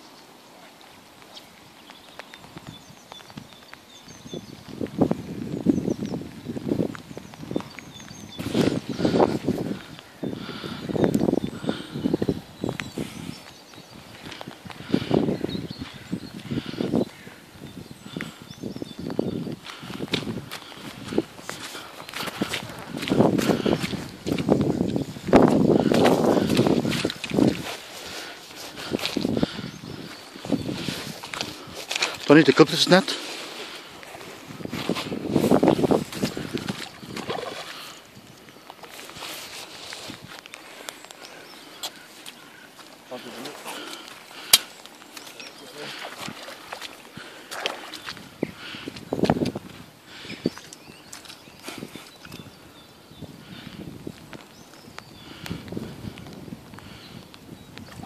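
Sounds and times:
rain hiss: 0.0 - 57.8
footsteps on earth: 0.7 - 52.9, 53.5 - 58.0.

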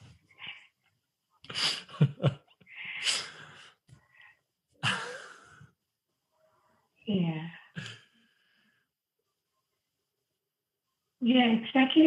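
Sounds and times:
man laughing: 1.6 - 2.6, 4.8 - 5.5.

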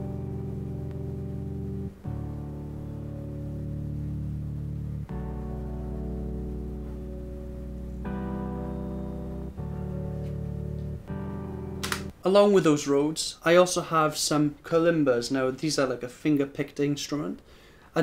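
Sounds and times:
electric piano chords: 0.0 - 12.1.

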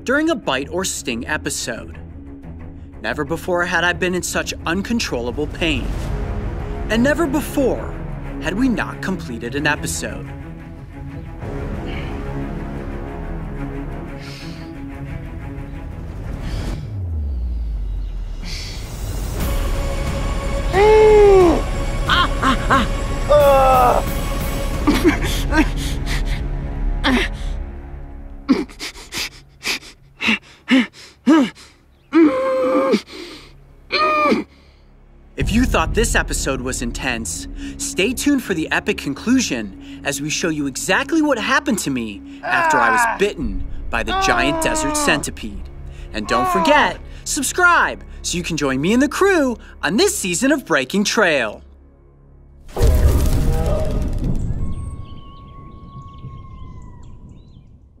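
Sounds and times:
low rumble: 15.2 - 23.1
man groaning: 20.7 - 24.1, 30.2 - 33.1, 33.9 - 34.5, 42.4 - 43.3, 44.0 - 45.3, 46.2 - 47.0
man gasping in pain: 28.5 - 34.8
bird-like chirps: 54.4 - 58.0.

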